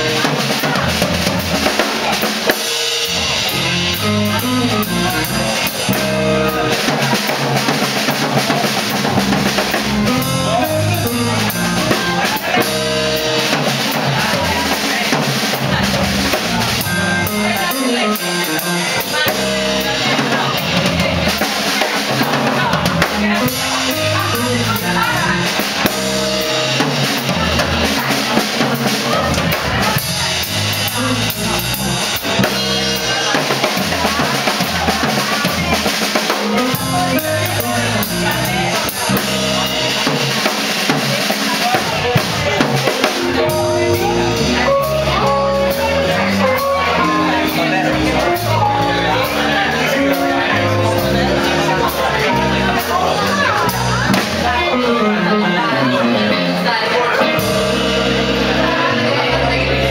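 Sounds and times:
live band playing: 0:00.0 - 0:59.9.

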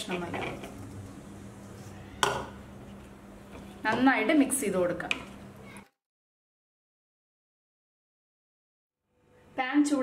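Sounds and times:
spoon knocking a bowl: 0:02.2 - 0:02.6.

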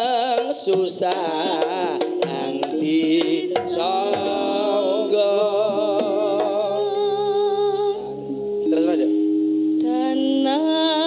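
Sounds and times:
held accompaniment notes: 0:00.0 - 0:10.2
woman singing long wavering notes: 0:01.0 - 0:11.0.

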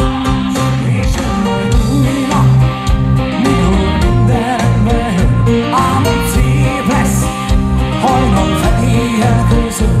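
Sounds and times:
live pop-rock band with vocals: 0:00.0 - 0:10.0.

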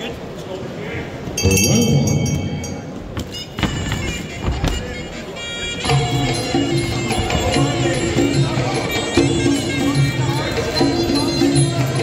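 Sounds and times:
oboe playing: 0:03.2 - 0:12.0.

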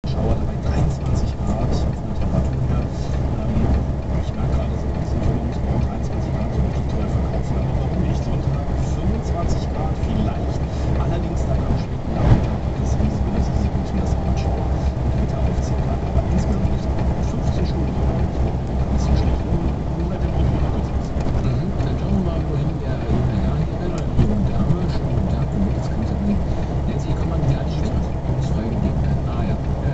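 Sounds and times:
in-cab road and engine noise: 0:00.0 - 0:29.9.

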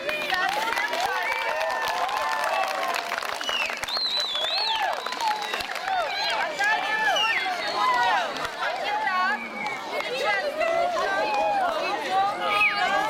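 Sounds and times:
children talking and shouting: 0:00.0 - 0:02.6, 0:05.7 - 0:13.0.

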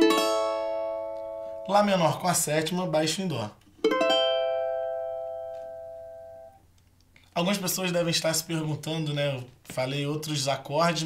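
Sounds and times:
steel strings strummed chord: 0:00.0 - 0:01.8, 0:03.9 - 0:06.6.

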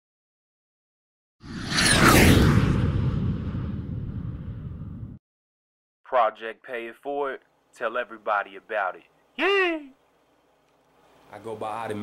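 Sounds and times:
rumbling whoosh and boom: 0:01.4 - 0:05.2.

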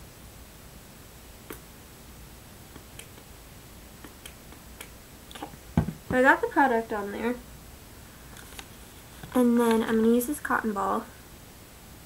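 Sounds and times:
handling noise: 0:05.5 - 0:06.3.

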